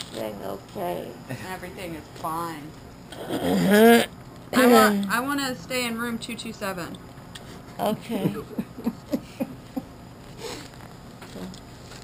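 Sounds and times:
woman moaning: 0:03.1 - 0:05.2.

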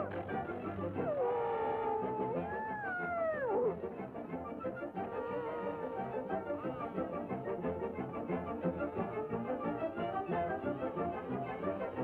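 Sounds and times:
cartoon band music: 0:00.0 - 0:07.4
wailing cartoon howl: 0:01.0 - 0:03.8, 0:05.0 - 0:06.3.

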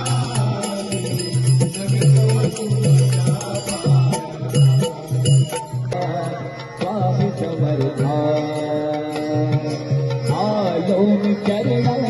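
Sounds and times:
man singing into a microphone: 0:00.0 - 0:12.0
percussion with low beat: 0:00.0 - 0:12.0.

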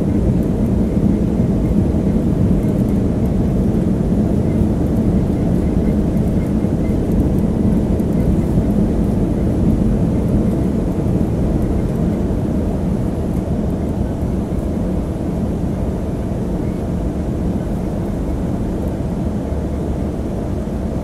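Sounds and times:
airliner cabin engine noise: 0:00.0 - 0:21.0.

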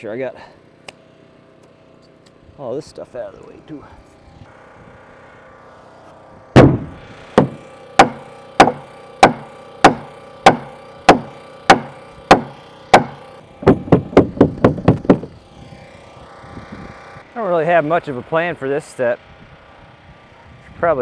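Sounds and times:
pneumatic nail gun shots: 0:06.6 - 0:15.4.

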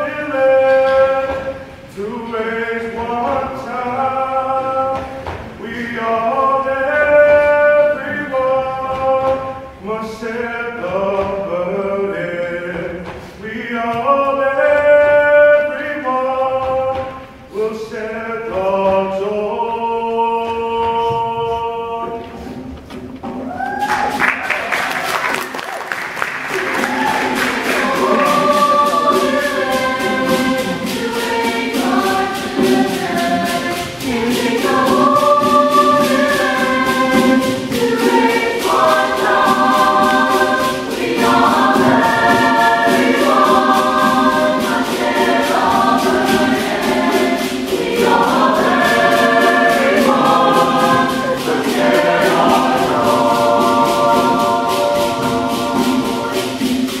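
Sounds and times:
mixed choir singing in harmony: 0:00.0 - 0:22.7, 0:24.0 - 0:57.0.

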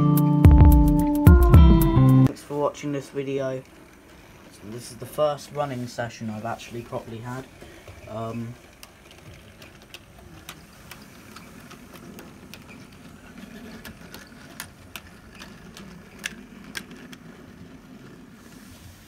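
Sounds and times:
wheels clicking over rail joints: 0:02.3 - 0:19.0.

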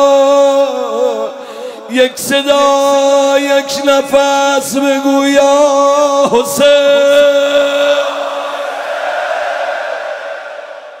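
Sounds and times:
voices chanting in echoing hall: 0:00.0 - 0:11.0.

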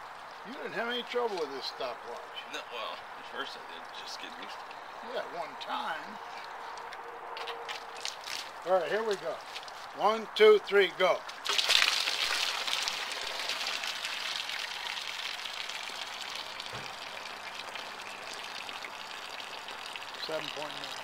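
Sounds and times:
water gushing onto grass: 0:07.7 - 0:10.0, 0:11.2 - 0:21.0.

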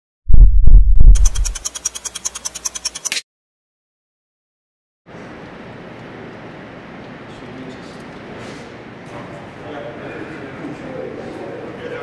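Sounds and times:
fast bright ticking pattern: 0:01.1 - 0:03.1.

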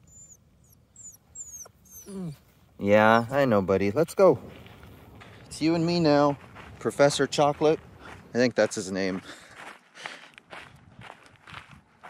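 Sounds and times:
faint high bird chirps: 0:00.0 - 0:02.4.

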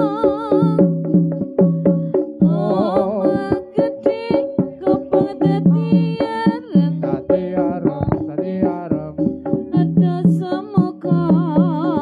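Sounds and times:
drum strokes: 0:00.0 - 0:12.0.

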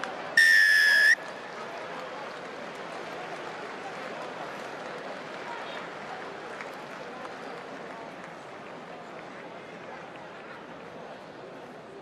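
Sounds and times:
crowd noise: 0:00.0 - 0:12.0
referee's whistle blast: 0:00.4 - 0:01.2.

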